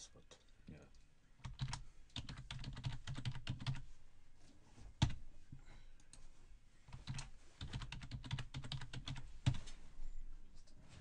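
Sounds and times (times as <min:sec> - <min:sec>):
typing on computer keyboard: 0:01.4 - 0:03.8, 0:06.9 - 0:09.6.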